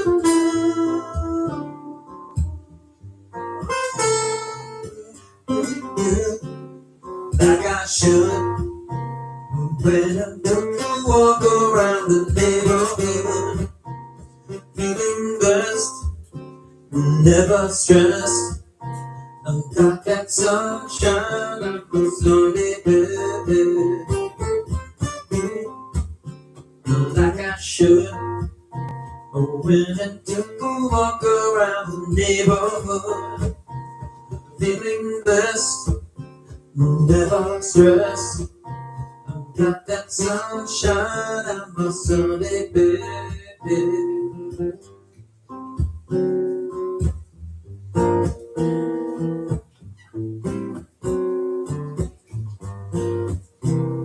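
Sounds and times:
man singing: 0.0 - 2.0, 4.8 - 6.6, 7.3 - 8.8, 9.4 - 13.7, 14.5 - 16.1, 16.9 - 18.6, 19.4 - 25.9, 26.9 - 28.5, 29.2 - 33.6, 34.6 - 36.0, 36.8 - 38.5, 39.3 - 44.8
acoustic guitar strumming: 0.0 - 54.0.

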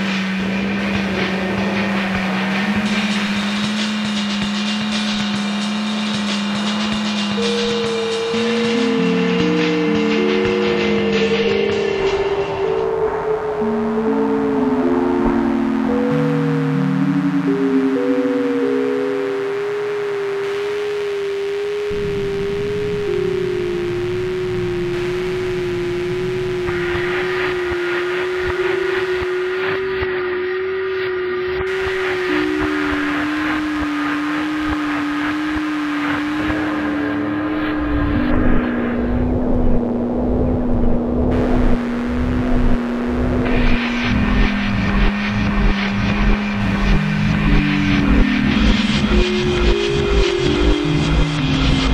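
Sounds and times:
pure tone stepping down: 0.0 - 51.9
grainy crackling texture: 31.7 - 51.9.

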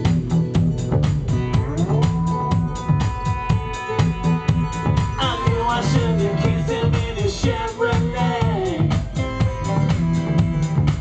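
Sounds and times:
drum-kit beat: 0.0 - 11.0
live dance-punk band playing: 0.0 - 11.0.

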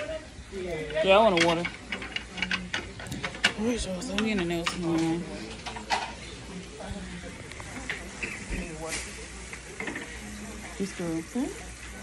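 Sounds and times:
indistinct talking: 0.0 - 12.0
low background noise: 0.0 - 12.0.

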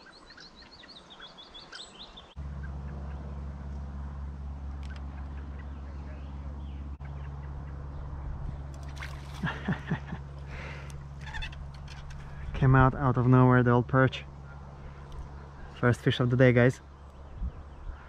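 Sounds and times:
small bird chirping: 0.0 - 3.3, 10.9 - 12.4
steady low rumble: 2.3 - 18.0.

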